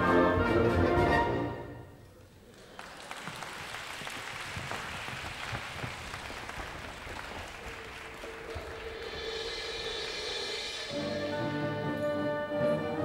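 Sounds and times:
wind band playing: 0:00.0 - 0:02.0, 0:07.8 - 0:13.0
audience applause: 0:02.3 - 0:10.3.

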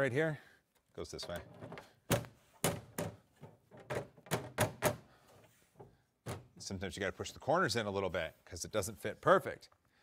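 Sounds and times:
sharp plastic knocks: 0:01.7 - 0:05.0.

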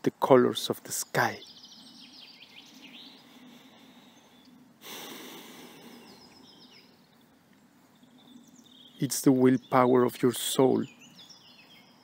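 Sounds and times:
faint background ambience: 0:00.0 - 0:12.0
small birds chirping: 0:00.0 - 0:12.0
soft rush of noise: 0:00.0 - 0:12.0.

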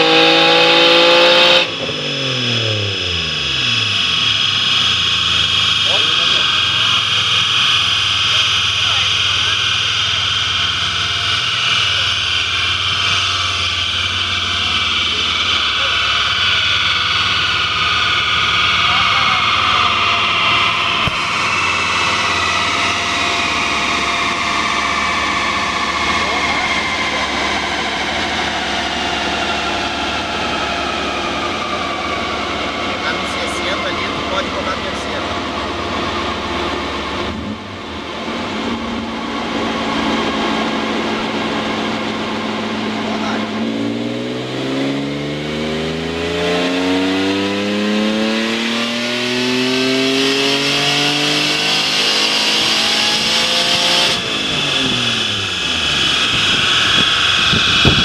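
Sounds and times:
engine revs falling: 0:00.0 - 0:58.0
whine falling in pitch: 0:00.0 - 0:58.0
steady fan noise: 0:12.1 - 0:58.0.

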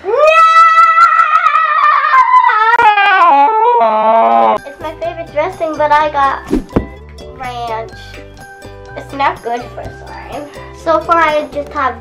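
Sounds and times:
child yelling high-pitched: 0:00.0 - 0:02.8
background music: 0:04.6 - 0:12.0.

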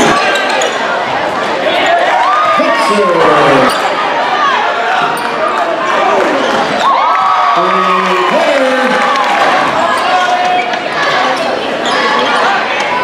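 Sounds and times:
sneakers squeaking: 0:00.0 - 0:02.2, 0:03.5 - 0:04.2, 0:04.9 - 0:06.9, 0:09.7 - 0:13.0
echoing voices: 0:00.0 - 0:13.0.

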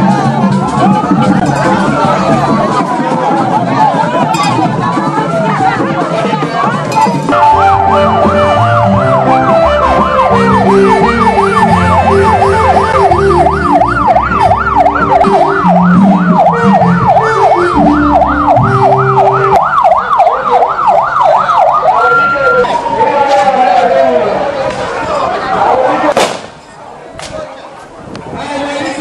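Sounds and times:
music with bass line: 0:00.0 - 0:20.2
electronic siren yelping: 0:07.3 - 0:23.1.

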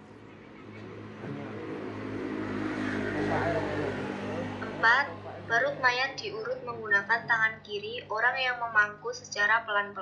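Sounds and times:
vehicle engine humming: 0:00.0 - 0:07.6.

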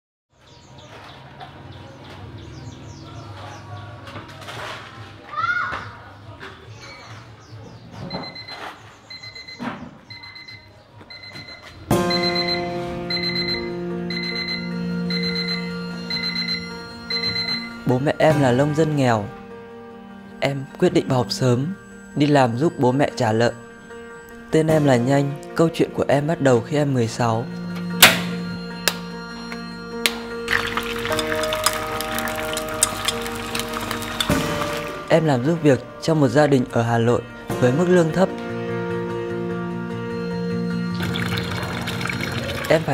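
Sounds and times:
alarm clock beeping: 0:08.1 - 0:18.8, 0:27.1 - 0:31.8
soft sustained music: 0:11.9 - 0:42.9
gas stove igniter clicking: 0:28.0 - 0:28.3.

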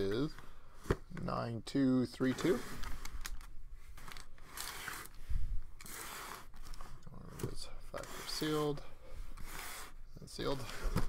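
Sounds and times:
cardboard scraping and rubbing: 0:05.8 - 0:11.0.

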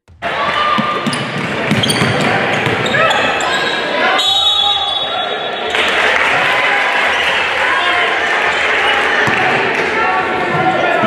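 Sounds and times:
crowd and player voices: 0:00.1 - 0:11.0.

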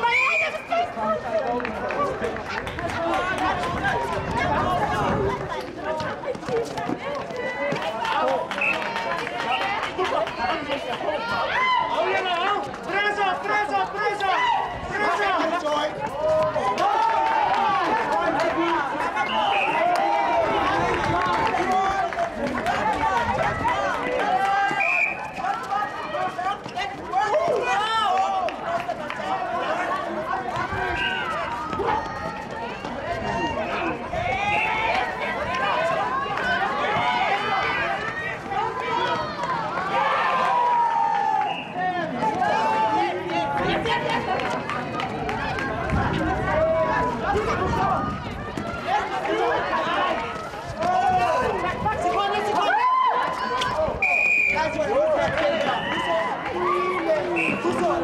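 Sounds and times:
voices calling and shouting: 0:00.0 - 0:58.0
running footsteps on hard court: 0:00.4 - 0:54.1, 0:54.7 - 0:58.0.

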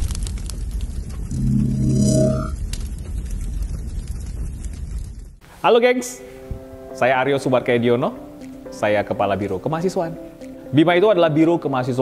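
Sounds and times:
fiery rumble with crackles: 0:00.0 - 0:05.4
sustained synthetic chord tone: 0:01.3 - 0:02.6.

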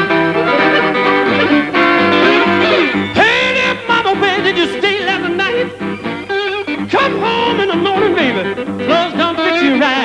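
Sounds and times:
blues harmonica bent notes: 0:00.0 - 0:10.0
guitar accompaniment: 0:00.0 - 0:10.0.

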